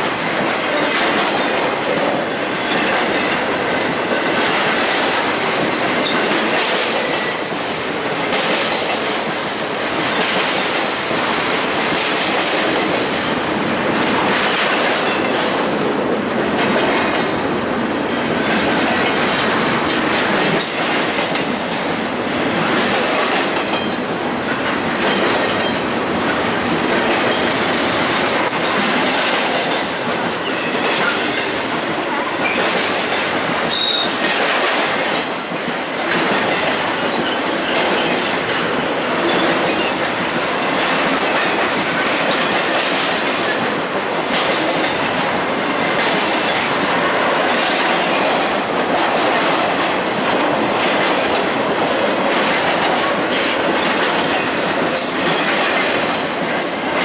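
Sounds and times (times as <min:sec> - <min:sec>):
wheels clacking over rail joints: 0:00.0 - 0:57.0
high wheel squeal: 0:33.7 - 0:34.1.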